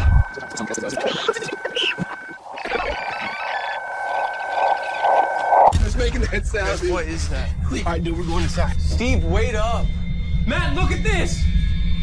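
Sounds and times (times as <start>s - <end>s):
steady high whine: 0.0s - 12.0s.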